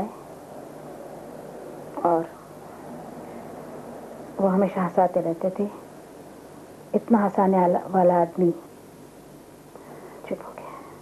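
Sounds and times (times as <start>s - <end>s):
tape hiss: 0.0s - 11.0s
woman whispering: 10.2s - 11.0s.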